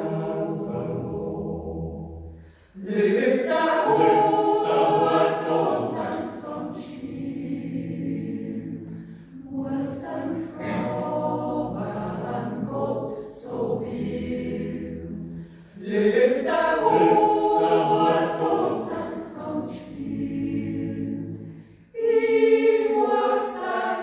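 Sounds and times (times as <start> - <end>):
choir yodeling unaccompanied: 0.0 - 24.0.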